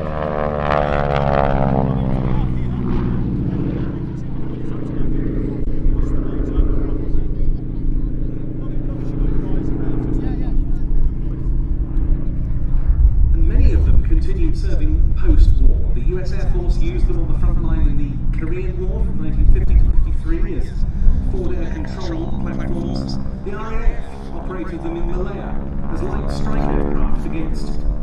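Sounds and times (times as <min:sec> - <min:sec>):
propeller plane engine passing: 0:00.0 - 0:28.0.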